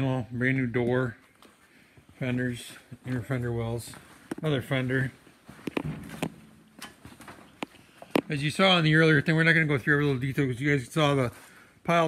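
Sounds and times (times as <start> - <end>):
footsteps on concrete floor: 1.2 - 8.5.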